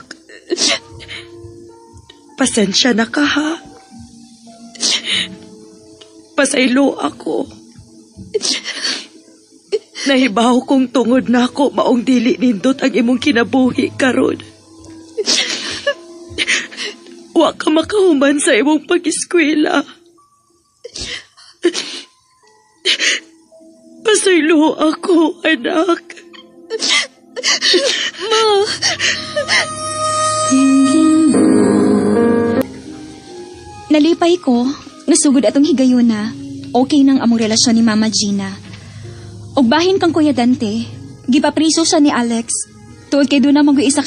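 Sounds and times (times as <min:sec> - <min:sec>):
soft background music: 0:00.0 - 0:44.0
person sobbing: 0:26.7 - 0:30.8.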